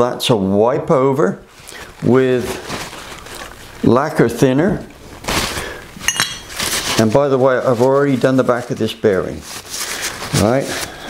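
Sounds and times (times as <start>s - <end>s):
paper towel rubbing and crinkling: 1.2s - 11.0s
metallic clink: 6.0s - 6.6s.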